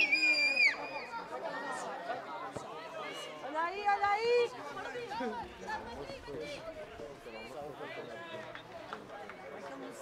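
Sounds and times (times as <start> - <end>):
people chattering and calling out: 0.0 - 10.0.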